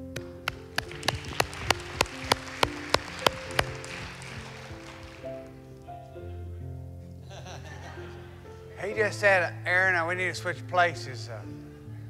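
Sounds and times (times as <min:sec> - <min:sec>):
hand claps: 0:00.0 - 0:05.9
soft music with held chords: 0:00.0 - 0:12.0
soft applause: 0:00.2 - 0:06.1.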